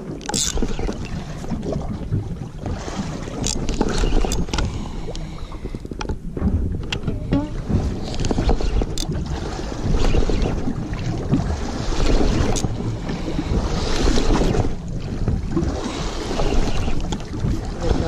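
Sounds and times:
water lapping around boat: 0.0 - 18.0
wind buffeting microphone: 0.0 - 18.0
fishing reel clicks and knocks: 0.2 - 1.0, 3.4 - 6.2, 6.9 - 9.1, 12.4 - 12.8.

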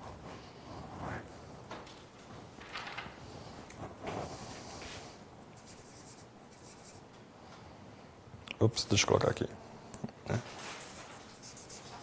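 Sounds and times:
marker scratching on paper: 5.6 - 7.0, 10.6 - 12.0.

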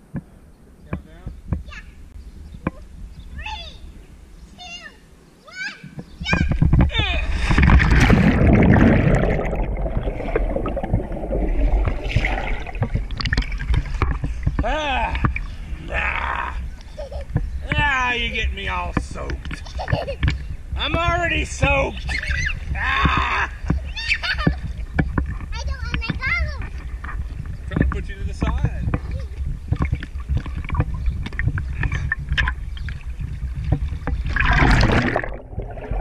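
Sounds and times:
rush of water: 6.4 - 36.0
water splashing: 6.4 - 36.0
underwater bubbling and gurgling: 6.6 - 17.8, 22.0 - 36.0
girl squealing laughter: 16.9 - 17.3, 22.1 - 22.6, 23.8 - 24.6.

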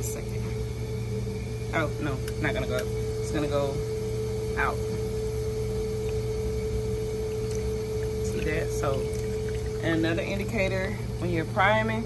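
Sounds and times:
machine low hum: 0.0 - 12.0
steady mid-pitched tone: 0.0 - 12.0.

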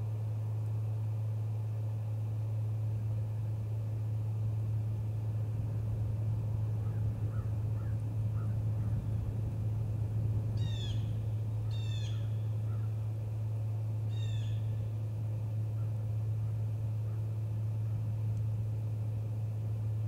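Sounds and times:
steady low hum: 0.0 - 20.0
bird harsh calls: 6.8 - 9.0, 10.6 - 13.0, 14.1 - 14.7
faint bird chirps: 10.6 - 13.0, 14.1 - 14.9.

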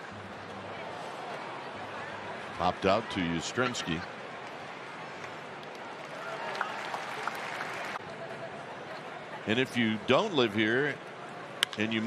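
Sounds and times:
crowd applauding: 6.0 - 8.0.

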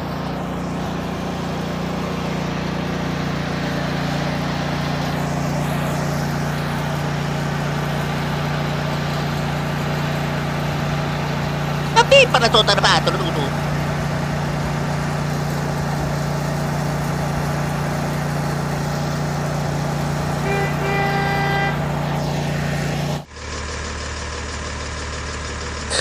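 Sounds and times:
engine idling hum: 0.0 - 12.0, 13.2 - 25.9
horn honk: 20.3 - 22.9.

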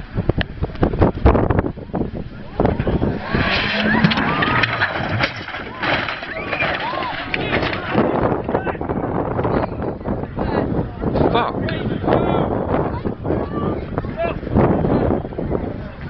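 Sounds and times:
crowd shouting and screaming: 2.3 - 8.8
car crash knocks and thuds: 2.4 - 8.3.

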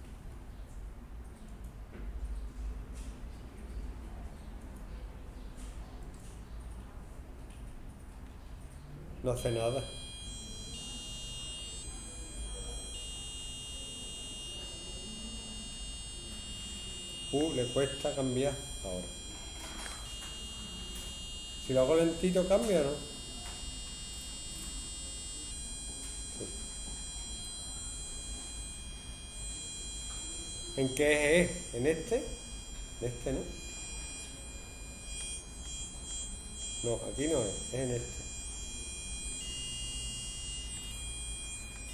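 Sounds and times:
thin buzzy electronic tone: 9.3 - 41.9.

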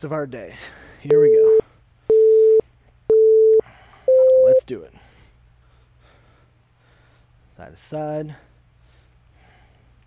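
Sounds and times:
timer beeps: 1.1 - 4.6.

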